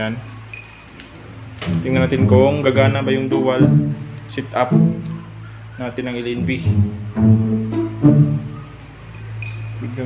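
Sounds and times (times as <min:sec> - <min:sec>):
steady low hum: 0:00.0 - 0:10.0
man speaking: 0:01.8 - 0:05.1, 0:05.8 - 0:07.0, 0:09.8 - 0:10.0.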